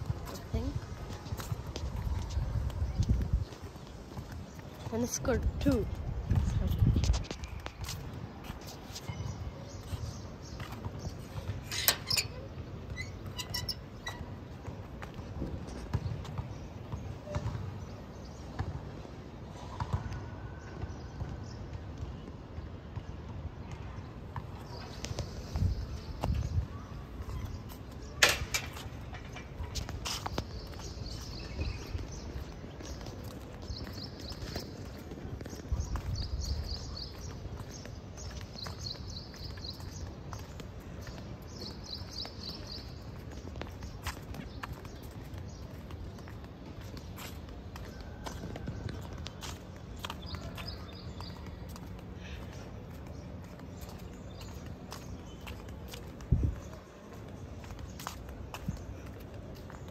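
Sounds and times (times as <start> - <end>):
footsteps on pavement: 0.0 - 59.9.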